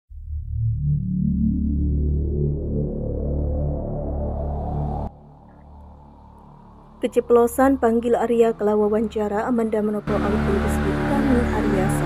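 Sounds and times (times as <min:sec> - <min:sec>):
synthesizer drone: 0:00.1 - 0:12.0.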